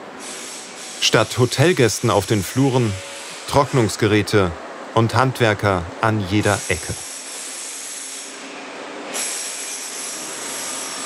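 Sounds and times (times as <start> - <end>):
drying machines whooshing hum: 0.0 - 11.0.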